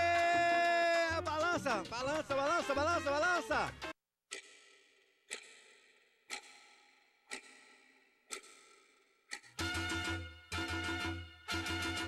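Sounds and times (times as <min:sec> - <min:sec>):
music: 0:00.0 - 0:04.0, 0:09.6 - 0:12.0
ringing clock ticks: 0:04.3 - 0:10.7.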